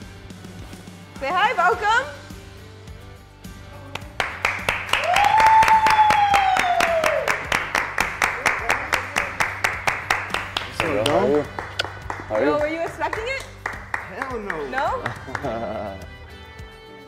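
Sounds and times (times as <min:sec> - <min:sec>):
group clapping in rhythm: 0:03.9 - 0:16.0
excited cheering: 0:04.8 - 0:07.8
high scream of joy: 0:04.9 - 0:07.4.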